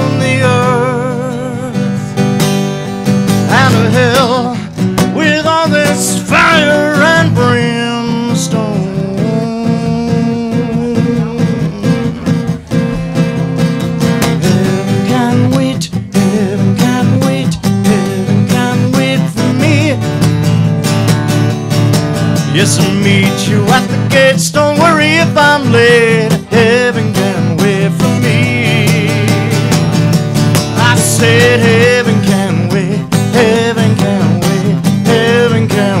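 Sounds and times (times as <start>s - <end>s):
acoustic guitar strumming: 0.0s - 36.0s
wordless sung line: 0.0s - 36.0s.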